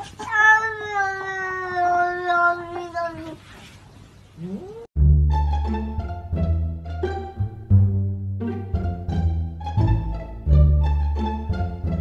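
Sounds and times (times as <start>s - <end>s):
cat meowing: 0.2s - 3.4s
music with plucked strings and bass: 5.0s - 12.0s.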